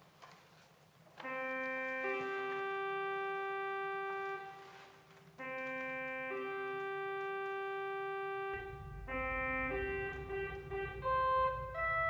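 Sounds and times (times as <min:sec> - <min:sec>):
slow keyboard music: 0:01.2 - 0:12.0.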